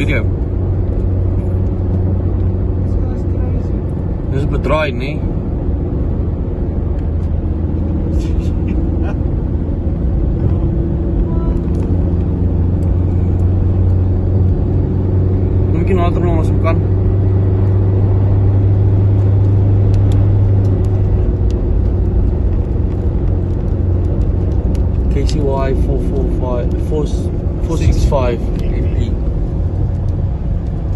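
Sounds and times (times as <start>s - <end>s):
vehicle engine and road noise: 0.0s - 30.9s.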